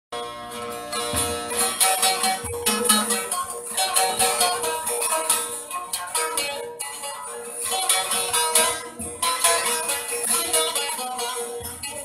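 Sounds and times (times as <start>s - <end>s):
plucked string instrument: 0.1s - 12.0s.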